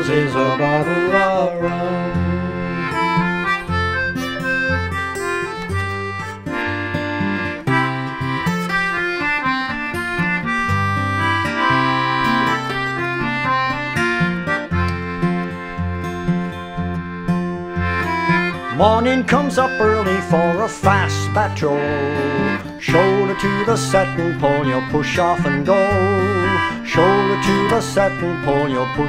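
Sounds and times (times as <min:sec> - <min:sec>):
acoustic guitar: 0:00.0 - 0:29.0
reedy free-reed melody: 0:00.0 - 0:29.0.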